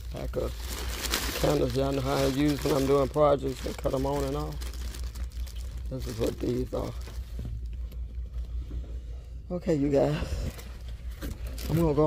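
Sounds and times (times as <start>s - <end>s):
low indoor rumble: 0.0s - 12.0s.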